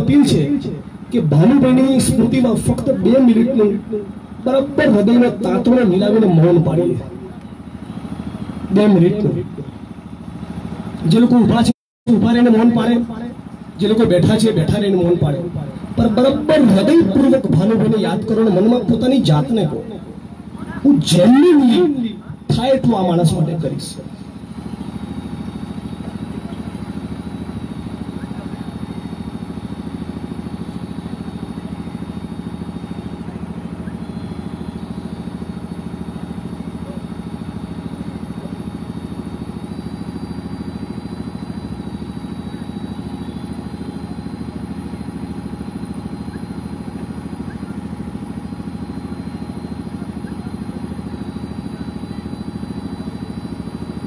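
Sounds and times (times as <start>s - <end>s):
low mechanical hum: 0.0s - 54.0s.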